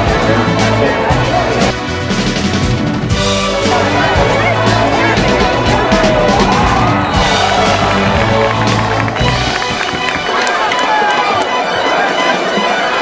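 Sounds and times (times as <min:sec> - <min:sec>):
low bass notes: 0:00.0 - 0:10.3.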